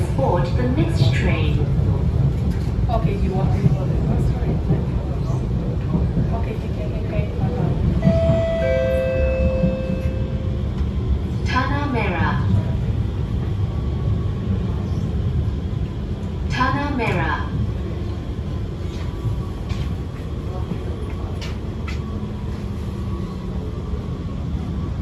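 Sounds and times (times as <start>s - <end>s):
train carriage rumble: 0.0s - 25.0s.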